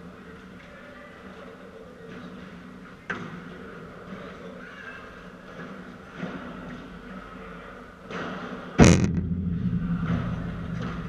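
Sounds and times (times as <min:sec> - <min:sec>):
indoor court background noise: 0:00.0 - 0:11.0.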